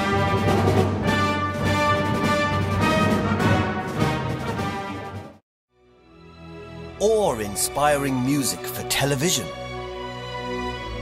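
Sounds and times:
soft background music: 5.8s - 11.0s
man speaking: 7.0s - 9.5s.

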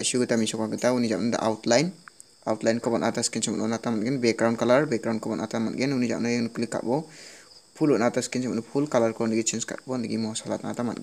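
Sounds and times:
man talking: 0.0s - 7.2s, 7.8s - 11.0s
faint high hiss: 0.0s - 11.0s.

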